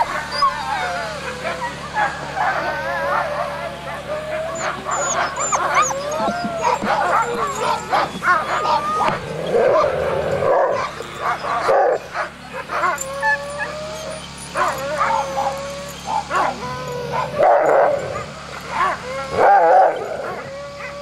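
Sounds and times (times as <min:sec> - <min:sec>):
dogs whining and howling: 0:00.0 - 0:21.0
dogs yipping and barking: 0:00.0 - 0:21.0.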